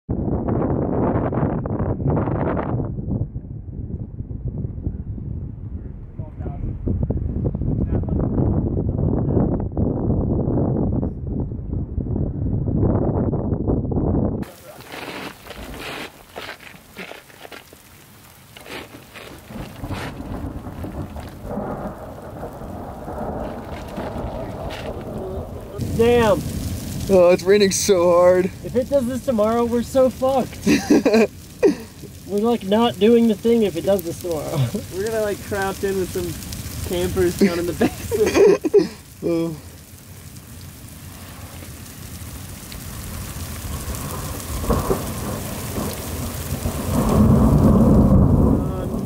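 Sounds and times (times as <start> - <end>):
wind buffeting microphone: 0.1 - 49.0
heavy rain pattering on rock: 14.4 - 49.0.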